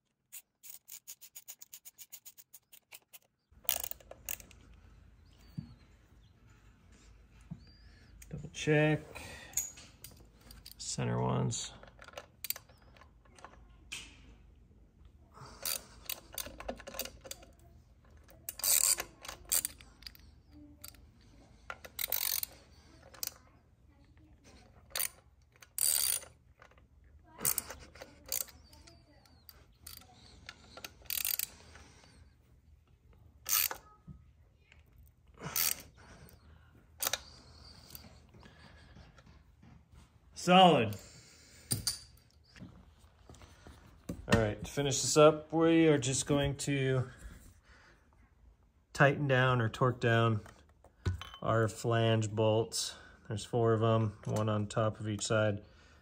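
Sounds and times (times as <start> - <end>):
hand ratchet clicking: 0.3 - 4.5, 18.5 - 20.2, 21.8 - 23.3, 24.9 - 26.8, 27.4 - 28.5, 29.8 - 31.6, 33.5 - 33.8.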